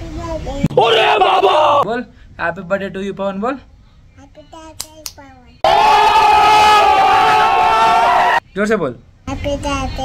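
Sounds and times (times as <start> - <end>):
group of people screaming: 0.7 - 1.8, 5.6 - 8.4.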